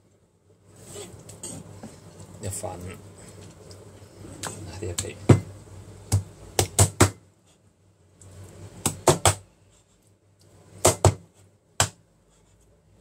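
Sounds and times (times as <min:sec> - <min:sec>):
cleaver chopping on plastic board: 0:08.8 - 0:09.4, 0:10.8 - 0:11.2, 0:11.8 - 0:12.0.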